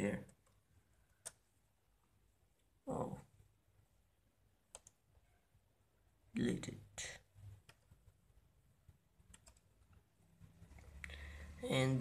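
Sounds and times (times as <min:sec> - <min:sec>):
computer mouse clicks: 0:04.7 - 0:05.0, 0:09.3 - 0:10.0.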